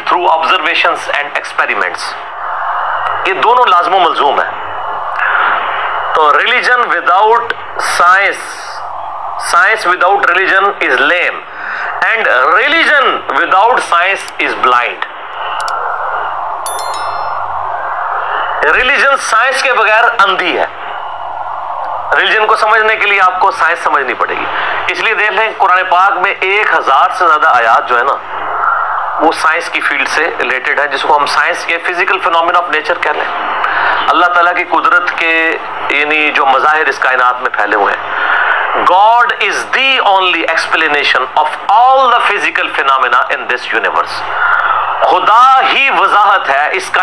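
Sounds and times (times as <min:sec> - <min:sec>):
bright bell-like chime: 0:16.7 - 0:17.6.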